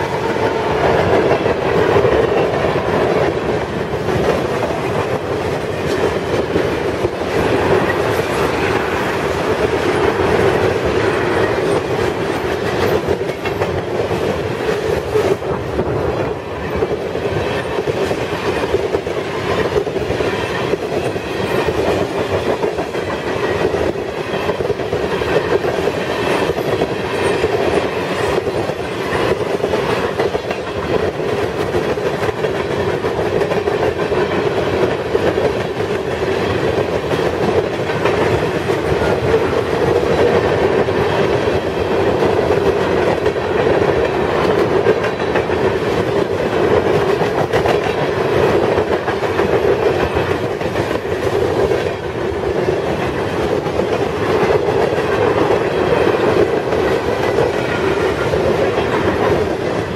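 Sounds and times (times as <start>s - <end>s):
train wheels rumbling on rail: 0.0s - 59.9s
wheels clacking over rail joints: 0.0s - 59.9s.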